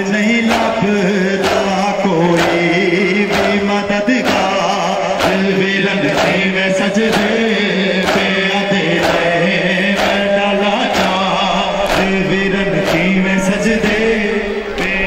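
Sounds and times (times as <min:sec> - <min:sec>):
man chanting a lament: 0:00.0 - 0:15.0
steady drum beat: 0:00.0 - 0:15.0.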